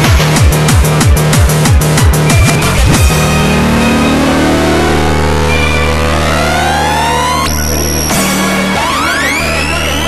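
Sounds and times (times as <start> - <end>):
low bass drone: 0.0 - 10.0
rising synth sweep: 2.6 - 10.0.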